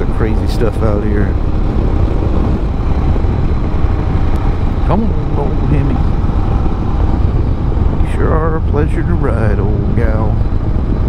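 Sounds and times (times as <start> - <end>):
motorcycle engine cruising: 0.0 - 11.0
rush of riding noise: 0.0 - 11.0.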